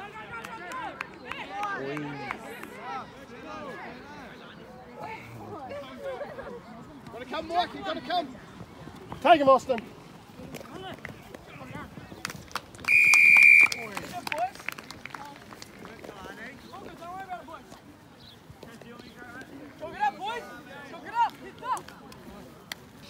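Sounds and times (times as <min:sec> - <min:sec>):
referee's whistle blast: 0:12.9 - 0:13.9.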